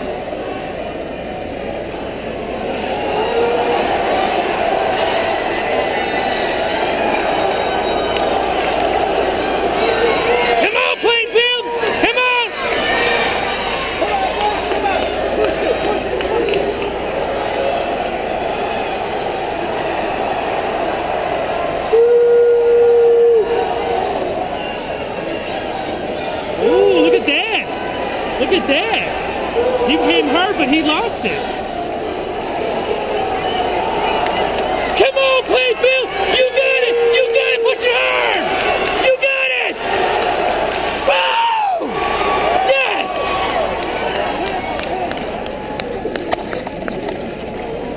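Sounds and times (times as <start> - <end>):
crowd cheering and shouting: 0.0 - 47.9
rising and falling yells: 2.6 - 24.8, 25.4 - 30.7, 31.4 - 44.6.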